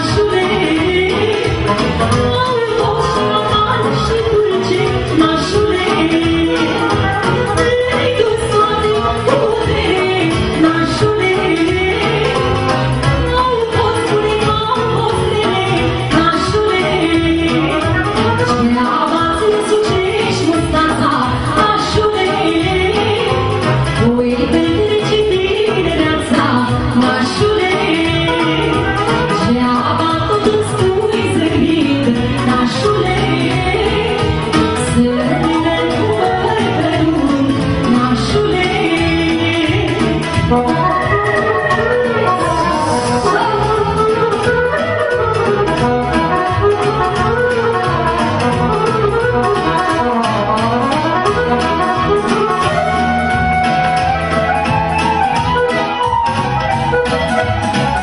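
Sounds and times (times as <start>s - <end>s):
band playing party music: 0.0s - 58.0s.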